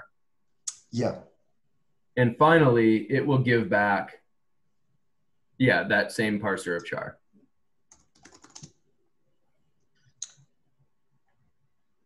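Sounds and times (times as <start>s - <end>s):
computer keyboard typing: 7.9s - 8.8s.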